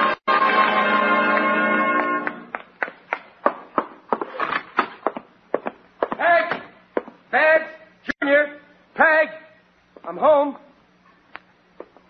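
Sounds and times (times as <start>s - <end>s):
footsteps on wooden floor: 2.5s - 7.2s.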